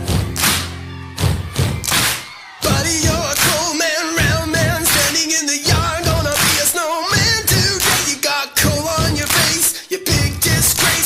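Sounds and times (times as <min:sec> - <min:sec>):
recorded music: 0:00.0 - 0:11.0.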